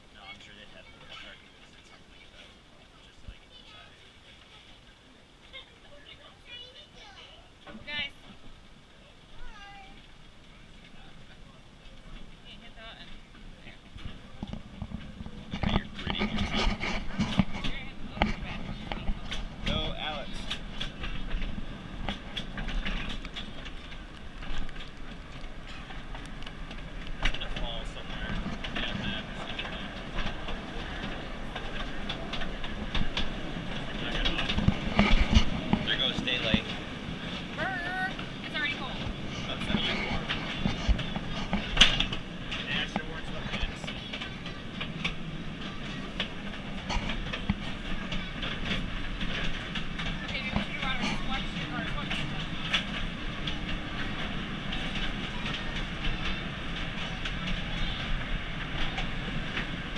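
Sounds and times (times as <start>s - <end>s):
train cars clattering over rails: 9.4s - 59.9s.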